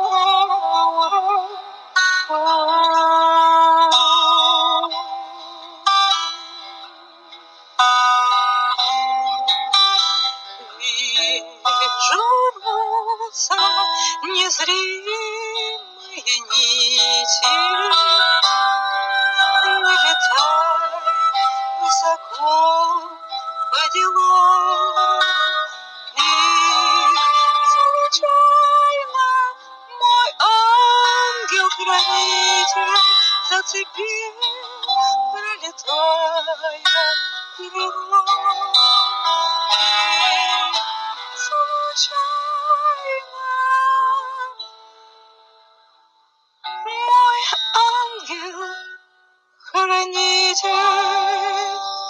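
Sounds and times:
person singing with vibrato: 0:00.0 - 0:45.2, 0:46.6 - 0:52.0
musical accompaniment: 0:00.0 - 0:52.0.

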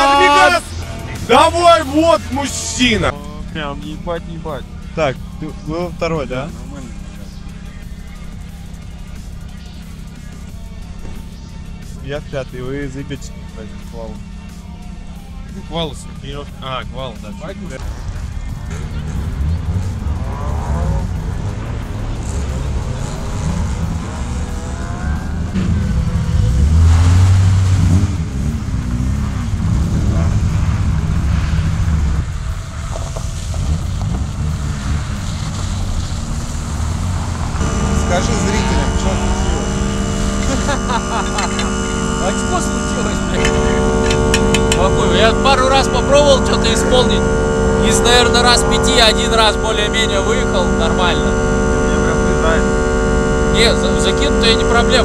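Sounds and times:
muffled voices: 0:00.0 - 0:21.4, 0:37.6 - 0:55.0
car engine revving: 0:00.0 - 0:55.0.

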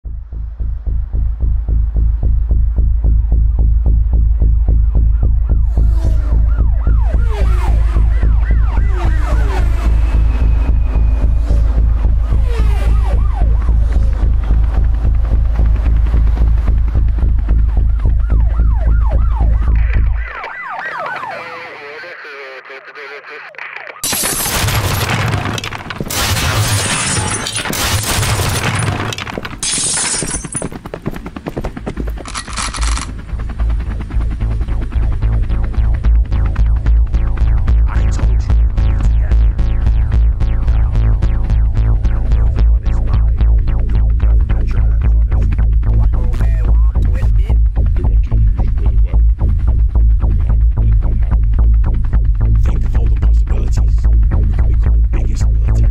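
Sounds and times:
pulsing bass: 0:00.0 - 0:20.4, 0:24.1 - 0:30.6, 0:32.0 - 0:55.9
siren-like synth glides: 0:04.1 - 0:16.5, 0:17.6 - 0:21.8, 0:32.3 - 0:44.1
gunfire sound effects: 0:24.0 - 0:29.4
electronic dance music: 0:36.0 - 0:47.3.

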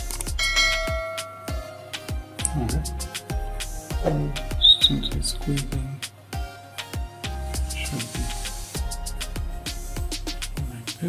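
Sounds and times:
background music with steady beat: 0:00.0 - 0:11.0
bell-like chime: 0:00.4 - 0:01.8.

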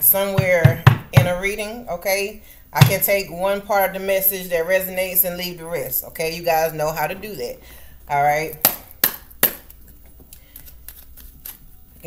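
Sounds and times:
card deck shuffling: 0:09.5 - 0:11.7
cards snapping: 0:10.4 - 0:11.6.

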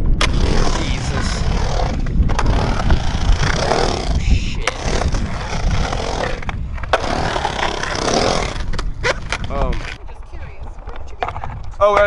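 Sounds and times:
skateboard wheels rolling on concrete: 0:00.0 - 0:12.0.

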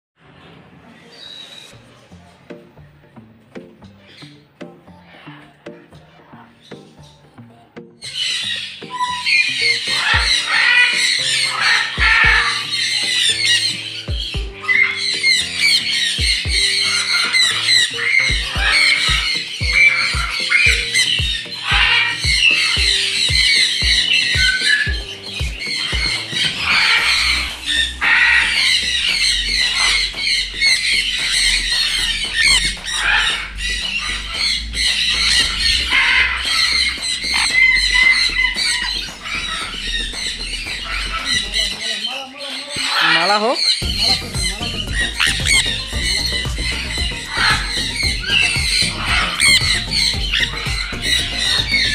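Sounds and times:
parrots squawking and screeching: 0:00.3 - 0:02.5, 0:03.8 - 0:07.2, 0:08.0 - 0:51.9
background music with bass beat: 0:01.8 - 0:42.1, 0:42.8 - 0:51.9.

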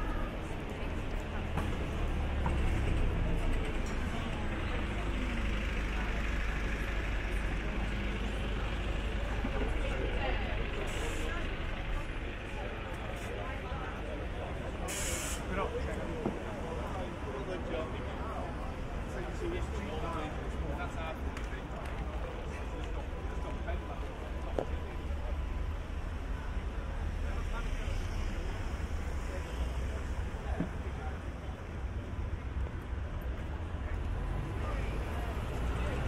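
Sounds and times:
bus engine rumbling: 0:00.0 - 0:36.0
passers-by talking: 0:00.0 - 0:36.0
air brakes hissing: 0:10.9 - 0:11.4, 0:14.9 - 0:15.5.

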